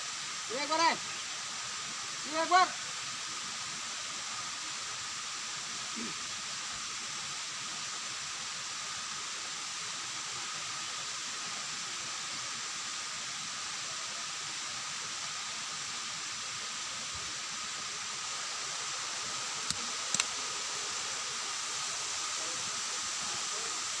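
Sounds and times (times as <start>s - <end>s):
waterfall rushing: 0.0s - 24.0s.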